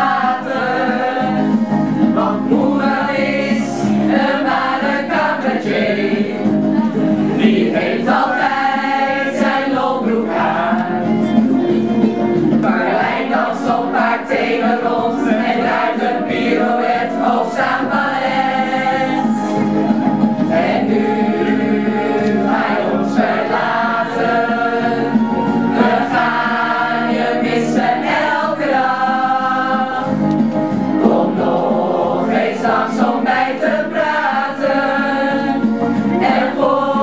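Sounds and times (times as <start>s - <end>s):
group singing in chorus: 0.0s - 37.0s.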